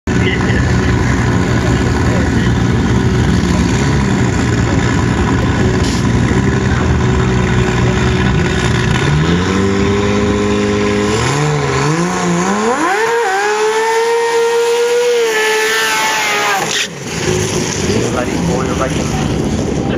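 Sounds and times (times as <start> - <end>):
dragster engine idling and revving: 0.1 - 19.9.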